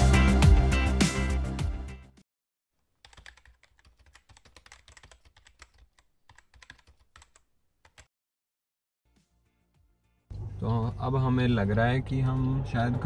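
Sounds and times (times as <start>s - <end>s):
quick irregular clicks and taps: 3.1s - 8.1s.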